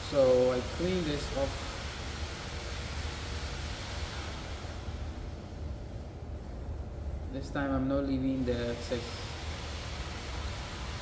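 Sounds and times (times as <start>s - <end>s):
low room rumble: 0.0s - 11.0s.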